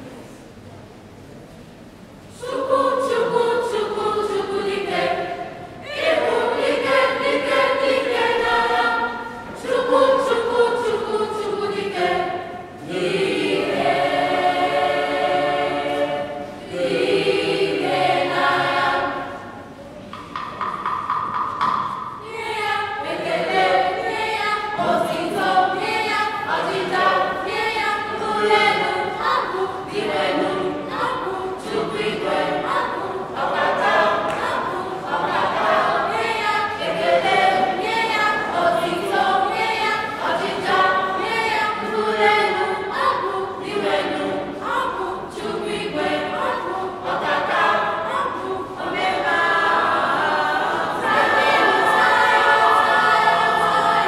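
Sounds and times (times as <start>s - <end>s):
choir of teenagers singing: 2.3s - 19.8s, 20.4s - 54.0s.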